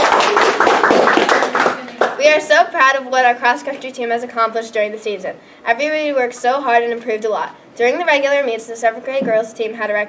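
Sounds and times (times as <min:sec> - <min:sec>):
small group clapping: 0:00.0 - 0:02.4.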